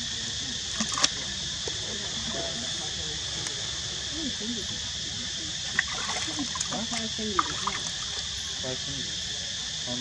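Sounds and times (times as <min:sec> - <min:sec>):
faint voices: 0:00.0 - 0:10.0
high-pitched insect drone: 0:00.0 - 0:10.0.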